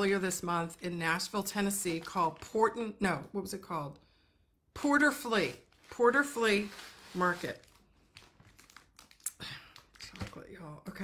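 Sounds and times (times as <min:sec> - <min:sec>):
packaging crinkling: 0:05.5 - 0:10.4.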